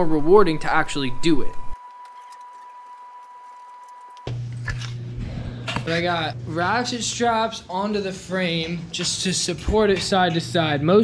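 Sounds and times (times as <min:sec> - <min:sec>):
low electrical hum: 0:00.0 - 0:01.8, 0:02.4 - 0:11.0
high-pitched tone: 0:00.0 - 0:04.3.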